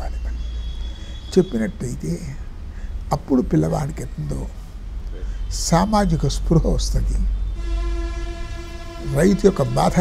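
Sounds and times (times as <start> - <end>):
horn-like held tone: 0.0 - 1.8, 7.3 - 10.0
constant low hum: 0.0 - 10.0.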